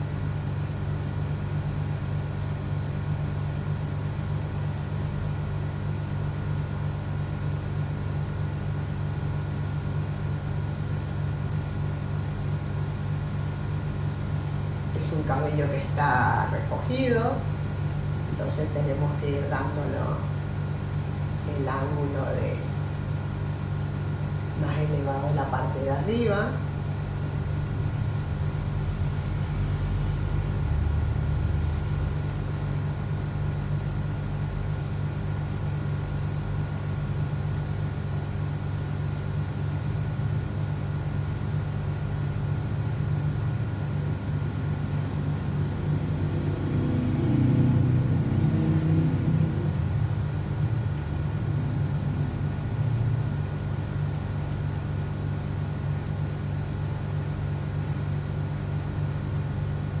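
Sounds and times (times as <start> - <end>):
steady low hum: 0.0 - 60.0.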